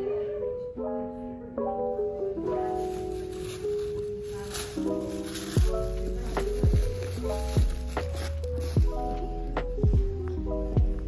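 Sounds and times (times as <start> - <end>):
light plucked melody: 0.0 - 11.0
beat with bass drum and bass: 5.6 - 11.0.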